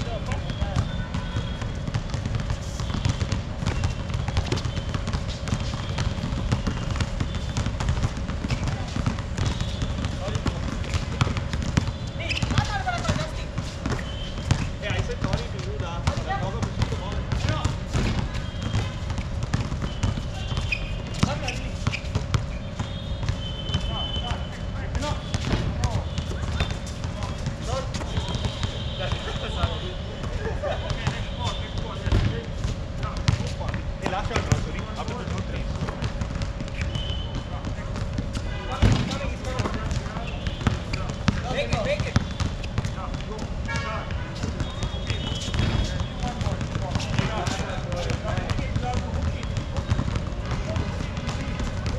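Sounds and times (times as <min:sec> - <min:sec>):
basketball bouncing on court: 0:00.0 - 0:51.9
players calling out: 0:00.0 - 0:51.9.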